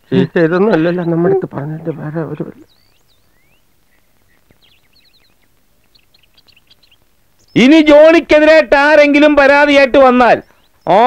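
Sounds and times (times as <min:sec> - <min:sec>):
background hiss: 0:00.0 - 0:11.0
bird chirping: 0:00.0 - 0:11.0.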